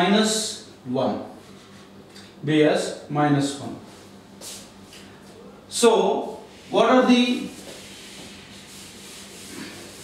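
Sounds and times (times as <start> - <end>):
marker scratching on whiteboard: 7.3 - 10.0.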